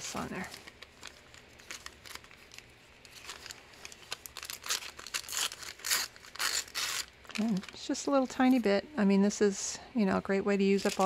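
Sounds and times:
paper crinkling and tearing: 0:00.0 - 0:08.5, 0:10.7 - 0:11.0.

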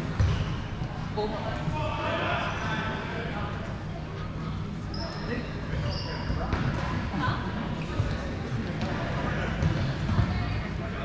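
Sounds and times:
balls bouncing and thudding: 0:00.0 - 0:01.0, 0:09.6 - 0:10.5.

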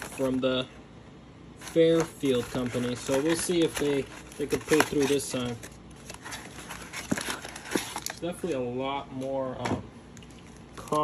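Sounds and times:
cardboard box rustling: 0:00.0 - 0:00.4, 0:01.6 - 0:08.6.

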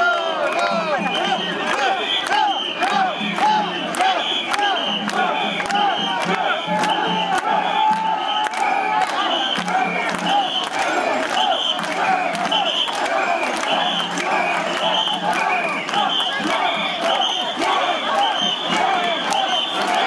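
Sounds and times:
crowd chanting in unison: 0:00.0 - 0:20.0.

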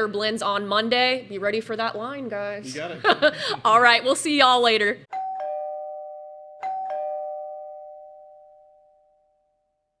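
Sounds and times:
two-note doorbell chime: 0:05.1 - 0:10.0.

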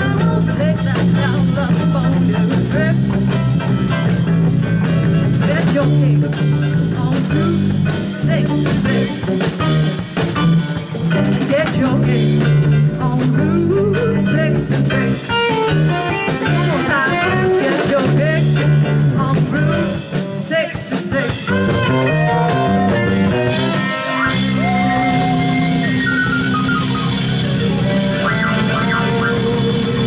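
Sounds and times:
live blues band playing: 0:00.0 - 0:30.0
bending guitar notes: 0:21.3 - 0:30.0.

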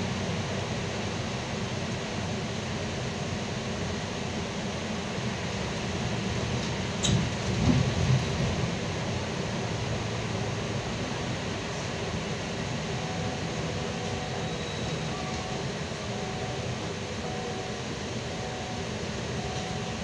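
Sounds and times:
bus engine and tyres rumbling: 0:00.0 - 0:20.0.

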